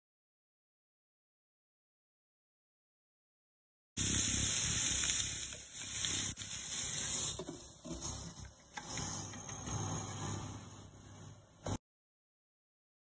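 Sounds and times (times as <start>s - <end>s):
ribs sizzling in a pan: 4.0s - 8.6s.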